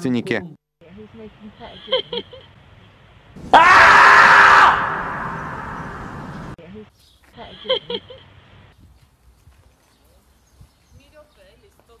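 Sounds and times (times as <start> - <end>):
shrill scream-like cry: 3.4 - 6.6.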